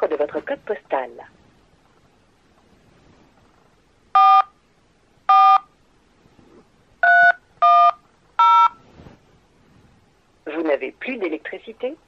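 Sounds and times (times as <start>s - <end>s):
touch-tone keypad beeps: 7.0s - 8.8s.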